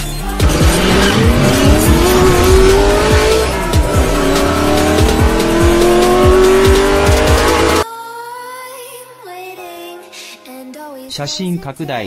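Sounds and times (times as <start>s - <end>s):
music with heavy beat: 0.0s - 7.8s
race car engine revving: 0.2s - 7.8s.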